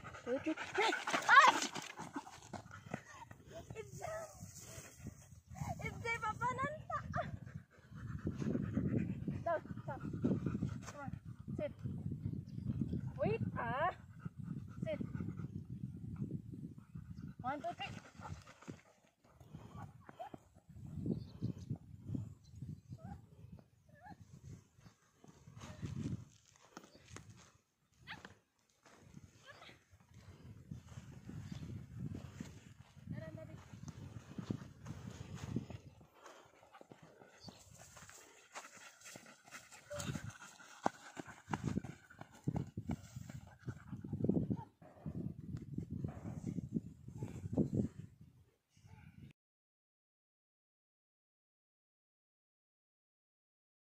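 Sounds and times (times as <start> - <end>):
dog panting: 0.0 - 3.9, 7.1 - 11.6, 13.0 - 20.4, 34.4 - 44.5
wind at microphone: 2.3 - 18.8, 19.4 - 28.3, 29.0 - 38.3, 39.7 - 49.3.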